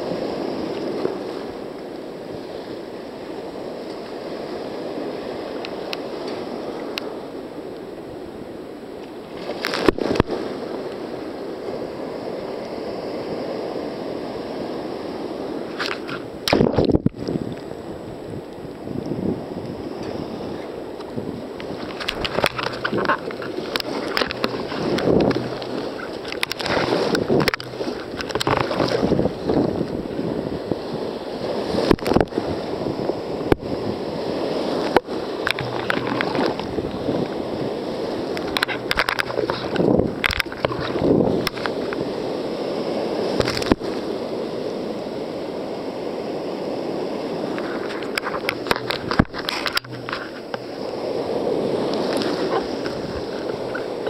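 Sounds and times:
paddle splashes: 0:09.2 - 0:17.2, 0:19.8 - 0:54.0
surf breaking: 0:09.2 - 0:18.2, 0:18.9 - 0:54.0
water sloshing against kayak hull: 0:19.7 - 0:42.6, 0:43.2 - 0:44.2, 0:47.3 - 0:54.0.

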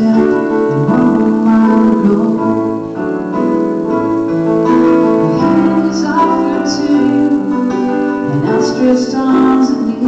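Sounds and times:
electronic keyboard: 0:00.0 - 0:10.0
woman singing: 0:05.3 - 0:10.0.

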